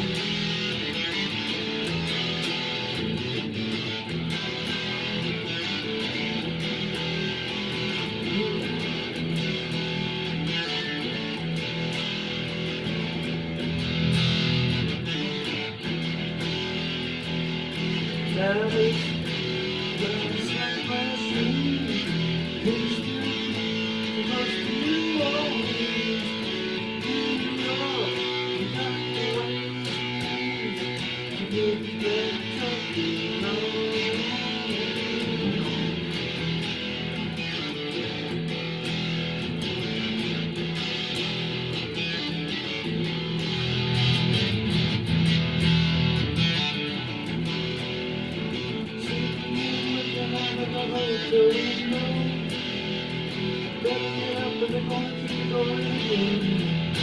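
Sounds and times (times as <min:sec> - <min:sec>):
guitar strumming: 0:00.0 - 0:57.0.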